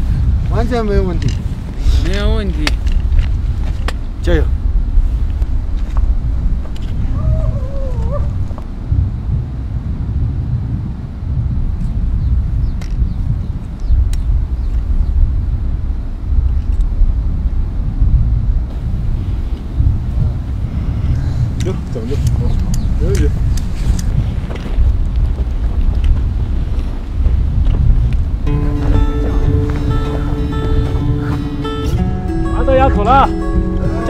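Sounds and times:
wind buffeting microphone: 0.0s - 34.0s.

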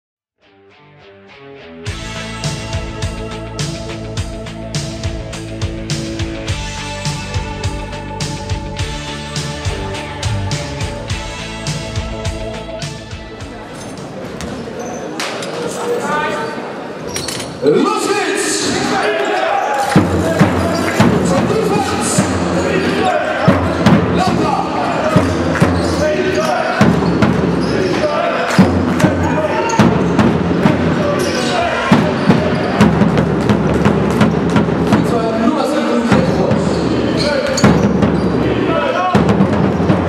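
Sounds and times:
many overlapping voices: 12.3s - 33.4s, 35.0s - 40.0s
din of voices: 17.6s - 27.0s
basketball bouncing on court: 19.9s - 21.5s, 26.7s - 28.0s, 28.6s - 35.1s, 36.1s - 38.4s, 39.1s - 40.0s.

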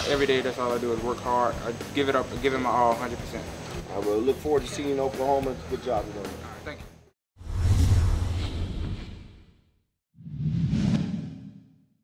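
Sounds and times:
whoosh with low rumble: 7.4s - 9.6s.

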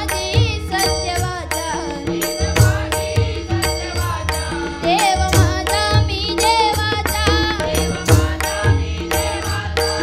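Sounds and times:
boy singing: 0.0s - 10.0s
hand drums: 0.0s - 10.0s.

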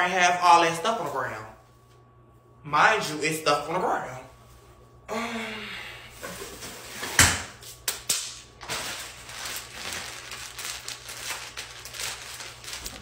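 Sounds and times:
tinsel and plastic rustling: 8.6s - 13.0s.

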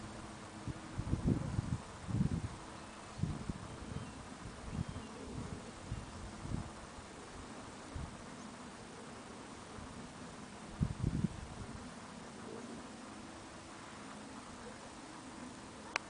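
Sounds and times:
wind buffeting microphone: 0.6s - 6.9s, 10.7s - 11.9s.

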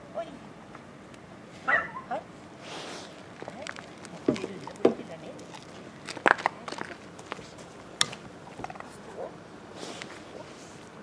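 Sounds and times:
dog steps on wooden plank: 3.2s - 8.9s.

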